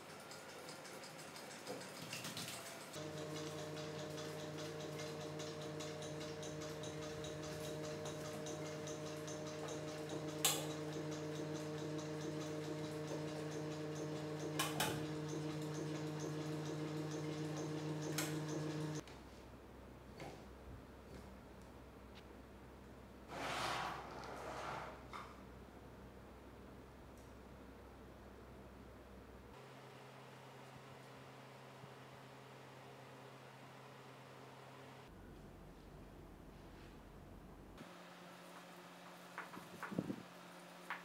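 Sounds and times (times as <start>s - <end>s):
generator hum with fast ticking: 2.7s - 19.0s.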